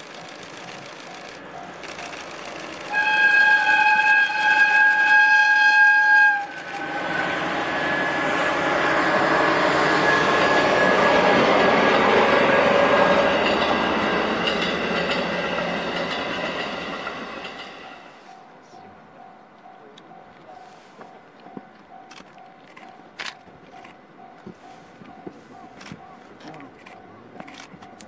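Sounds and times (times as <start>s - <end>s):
train passing by: 0.0s - 28.0s
locomotive horn blast: 2.9s - 11.4s.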